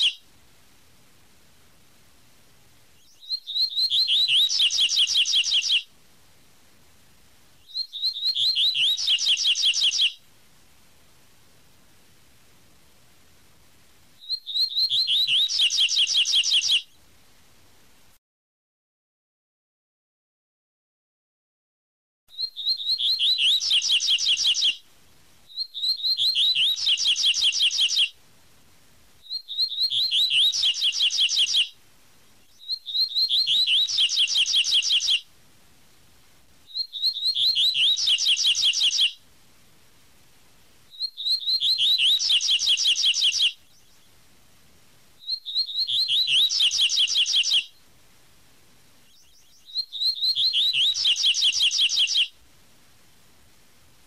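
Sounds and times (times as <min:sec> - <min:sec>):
bird singing high fast notes: 0:03.0 - 0:05.8, 0:07.6 - 0:10.2, 0:14.2 - 0:16.8, 0:22.3 - 0:24.8, 0:29.3 - 0:31.7, 0:32.6 - 0:35.2, 0:36.7 - 0:39.2, 0:41.0 - 0:43.5, 0:45.2 - 0:47.7, 0:49.1 - 0:52.3.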